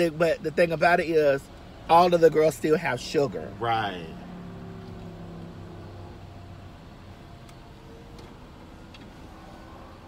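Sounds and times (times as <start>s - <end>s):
car cabin engine rumble: 0.0s - 10.0s.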